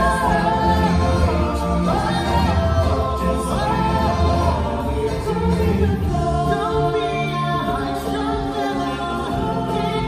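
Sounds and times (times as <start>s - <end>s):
backing music: 0.0s - 10.0s
people singing: 0.0s - 10.0s.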